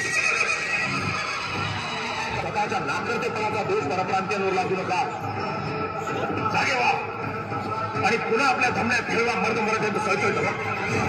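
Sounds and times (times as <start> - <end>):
horse whinny: 0.0 - 2.5
hoofbeats: 0.0 - 2.6
music: 0.0 - 11.0.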